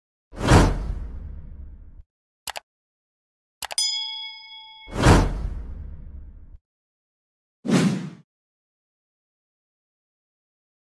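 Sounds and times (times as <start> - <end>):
whoosh with deep low boom: 0.6 - 2.0.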